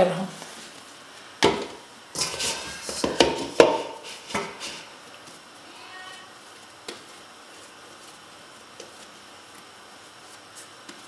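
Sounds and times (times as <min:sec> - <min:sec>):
dough knocking in metal bowl: 0:01.4 - 0:04.9.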